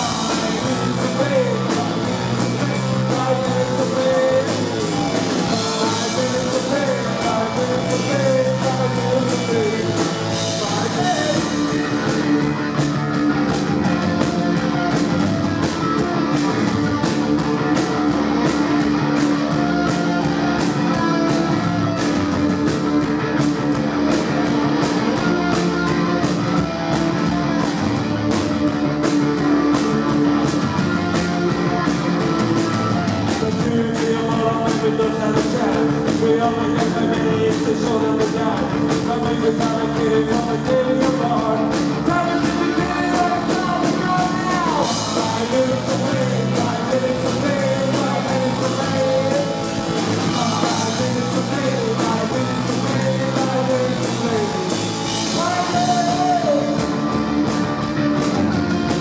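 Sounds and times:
bass guitar: 0.0 - 59.0
distorted electric guitar: 0.0 - 59.0
drums: 0.0 - 59.0
person singing: 0.0 - 59.0.

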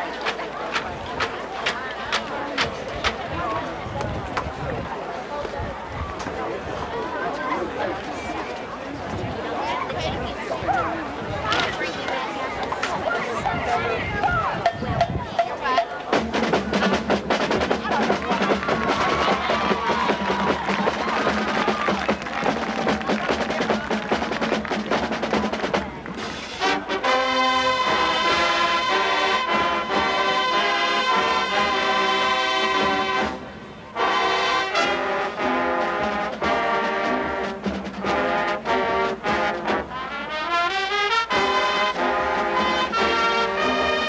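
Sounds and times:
marching band drum strokes: 12.7 - 44.0
brass playing sustained chords: 26.6 - 44.0.

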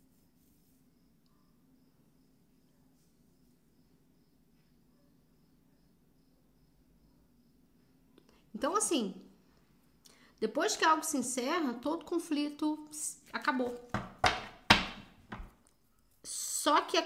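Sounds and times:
faint low hum: 0.0 - 13.9.

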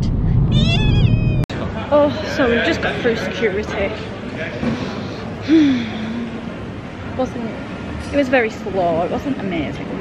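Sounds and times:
car cabin rumble: 0.0 - 1.5
woman squealing: 0.5 - 1.5
echoing hall hubbub: 1.5 - 10.0.

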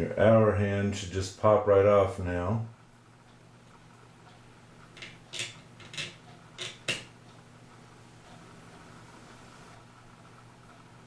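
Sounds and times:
faint steady hum: 0.0 - 11.0
fingers clicking and scraping clock hand: 4.3 - 7.2.

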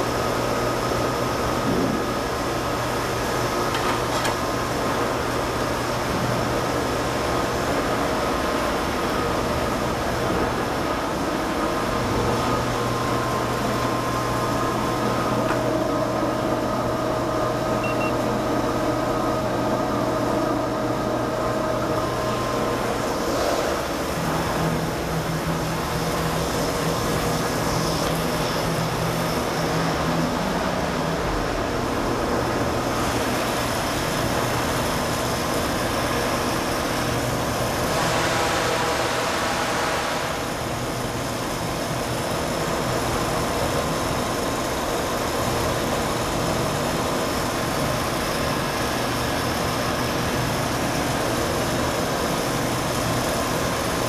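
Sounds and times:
agitator motor and gear hum: 0.0 - 54.0.

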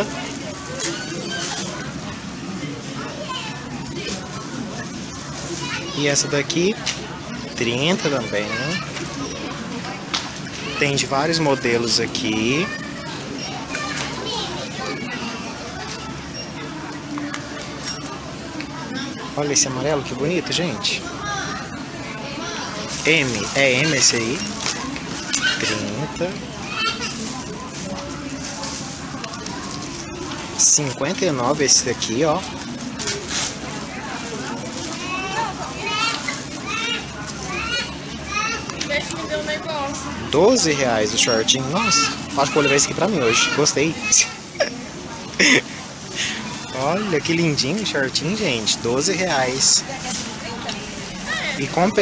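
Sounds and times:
shoppers' voices: 0.0 - 52.0
child's voice: 12.6 - 15.2.

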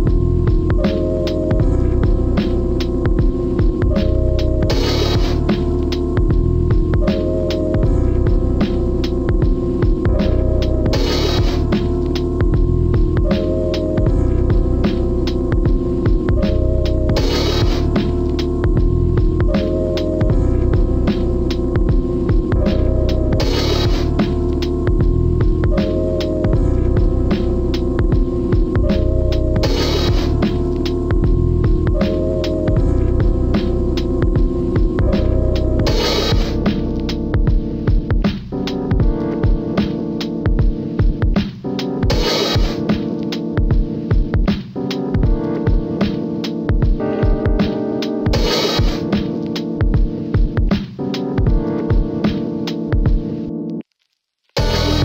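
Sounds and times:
hip-hop instrumental beat: 0.0 - 53.8, 54.6 - 55.0.

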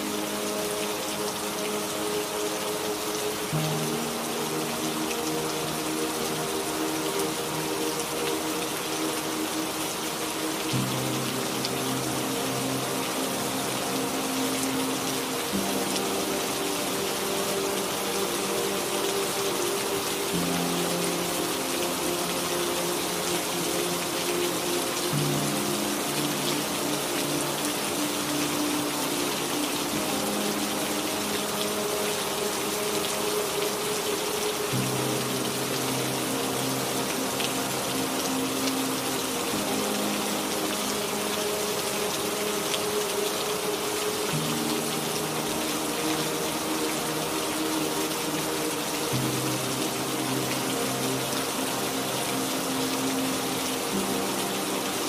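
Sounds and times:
ambient music with slow chords: 0.0 - 55.0
steady rain: 0.0 - 55.0.

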